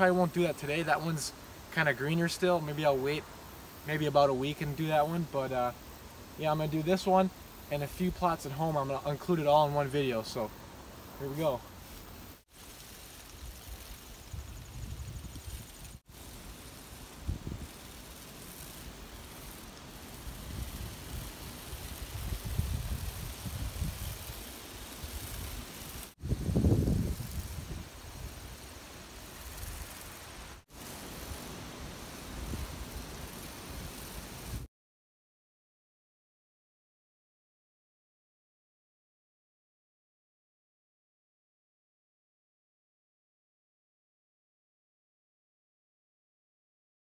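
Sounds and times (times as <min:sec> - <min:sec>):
faint hiss: 0:00.0 - 0:34.7
wind buffeting microphone: 0:20.4 - 0:24.4, 0:26.2 - 0:28.5.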